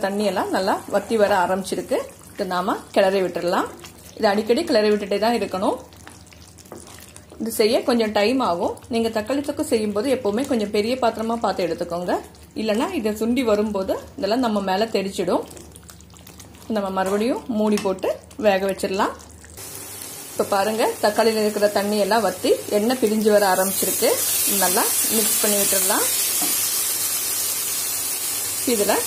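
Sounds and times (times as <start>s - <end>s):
sauce sizzling in oil: 0.0s - 8.4s, 19.1s - 29.0s
woman speaking: 20.4s - 26.2s, 28.7s - 29.0s.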